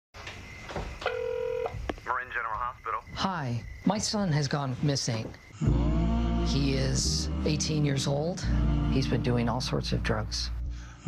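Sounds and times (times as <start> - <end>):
telephone ringing tone: 1.0 - 1.8.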